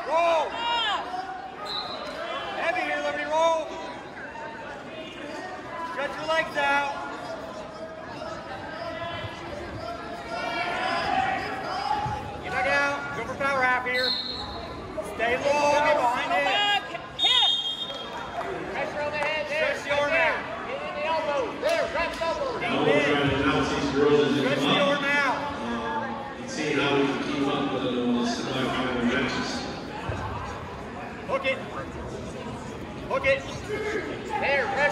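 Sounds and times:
referee's whistle blasts: 1.6 - 2.2, 13.9 - 14.7, 17.2 - 18.1
shouting voices echoing: 33.1 - 34.9.

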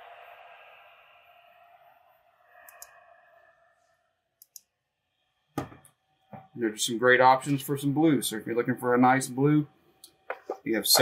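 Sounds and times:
faint clicks: 2.6 - 3.0.

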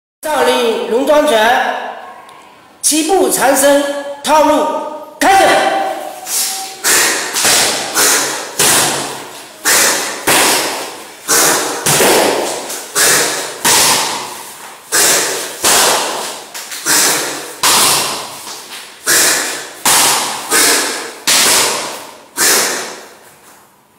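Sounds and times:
sharp striking sounds: 5.5 - 23.1.

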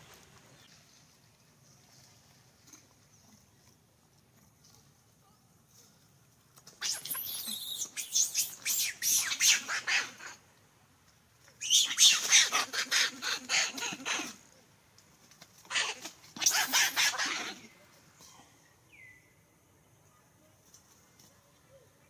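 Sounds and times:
monkey screaming: 6.8 - 10.4, 11.6 - 14.4, 15.6 - 17.7.

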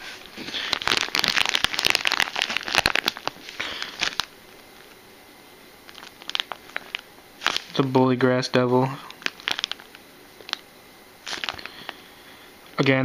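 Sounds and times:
plastic bag crinkling: 0.2 - 5.0, 5.8 - 7.8, 9.0 - 10.6, 11.2 - 12.0.

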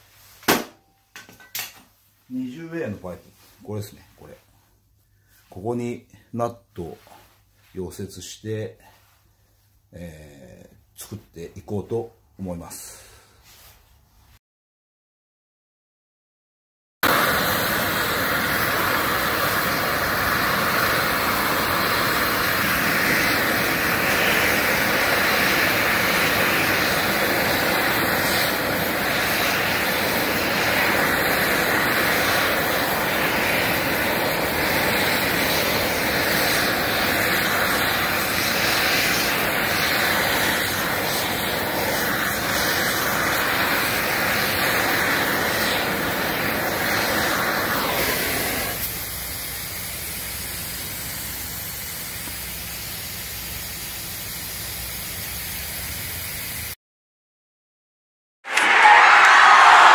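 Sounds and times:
welding torch flame hissing: 17.0 - 56.8.

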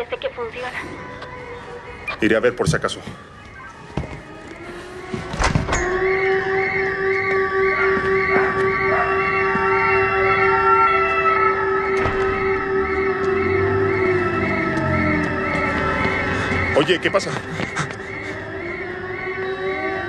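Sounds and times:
sustained drone: 4.2 - 20.0.

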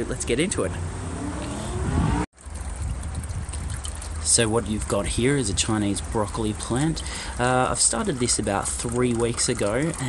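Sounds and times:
wind rumbling on microphone: 1.4 - 6.2.

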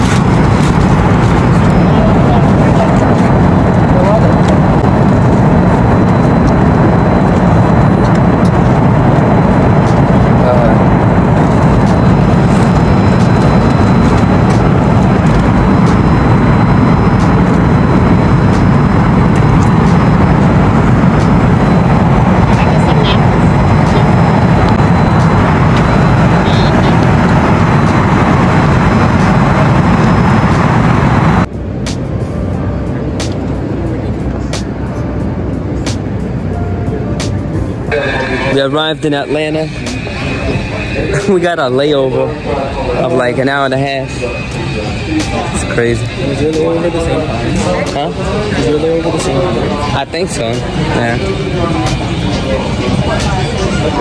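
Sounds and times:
rushing air: 0.0 - 41.6
airliner cabin engine noise: 0.0 - 54.0.

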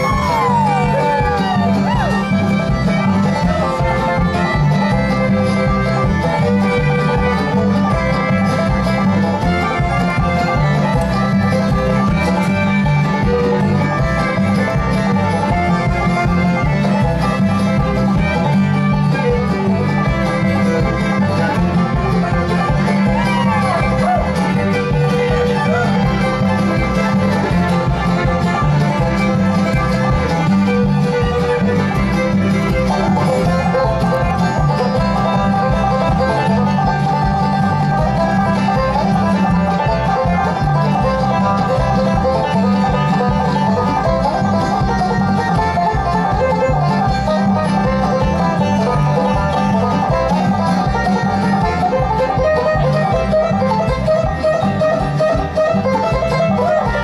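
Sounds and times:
banjo: 0.0 - 57.0
fiddle: 0.0 - 57.0
strummed acoustic guitar: 0.0 - 57.0.

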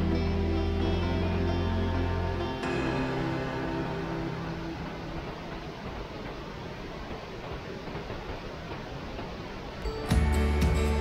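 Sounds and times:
music track: 0.0 - 6.6, 9.8 - 11.0.

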